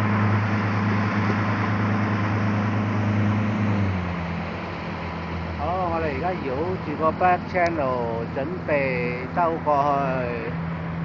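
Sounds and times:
outboard motor running: 0.0 - 11.0
water rushing: 0.0 - 11.0.

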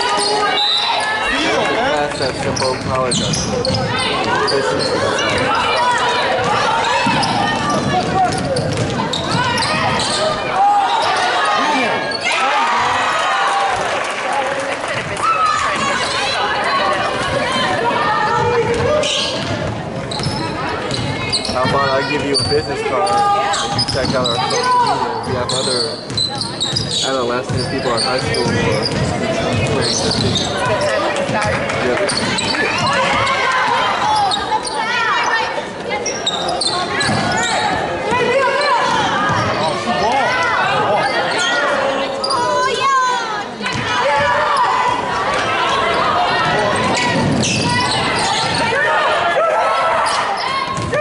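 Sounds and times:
players and spectators calling: 0.0 - 51.0.

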